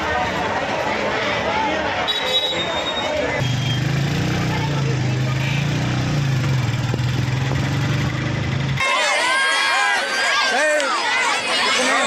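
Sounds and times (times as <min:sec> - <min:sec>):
crowd voices: 0:00.0 - 0:12.0
bus engine idling: 0:06.2 - 0:08.8
people shouting: 0:08.8 - 0:12.0.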